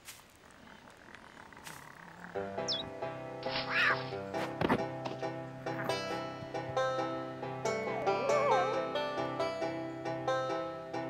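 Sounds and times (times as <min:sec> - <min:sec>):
rustling through grass: 0:00.0 - 0:04.6.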